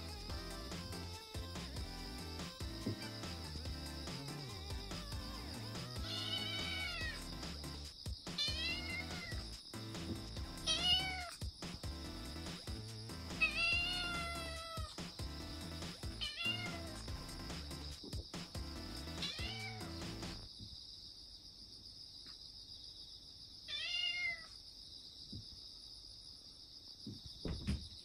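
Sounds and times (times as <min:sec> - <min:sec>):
background music: 0:00.0 - 0:20.5
kitten meowing: 0:06.0 - 0:07.2, 0:08.4 - 0:09.4, 0:10.7 - 0:11.3, 0:13.4 - 0:14.8, 0:16.2 - 0:16.9, 0:19.2 - 0:19.8, 0:23.7 - 0:24.5.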